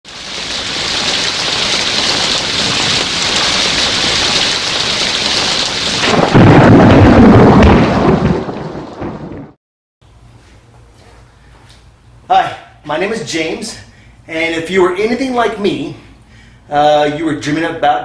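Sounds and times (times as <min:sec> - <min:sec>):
heavy rain: 0:00.1 - 0:09.6
loud thunderclap rumbling: 0:00.6 - 0:09.6.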